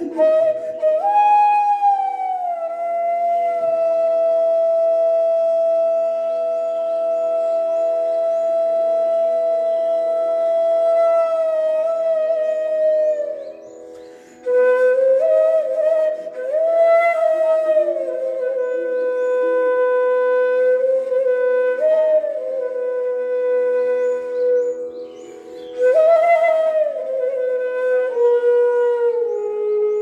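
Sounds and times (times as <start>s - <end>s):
bamboo flute melody: 0.0s - 30.0s.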